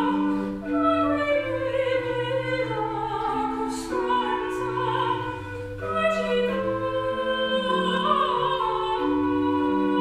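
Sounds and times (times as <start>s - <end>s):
female classical singer: 0.0s - 10.0s.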